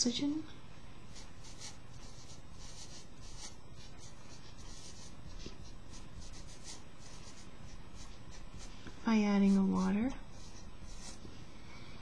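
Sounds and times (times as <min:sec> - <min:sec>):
low room hum: 0:00.0 - 0:12.0
marker writing on paper: 0:01.1 - 0:11.3.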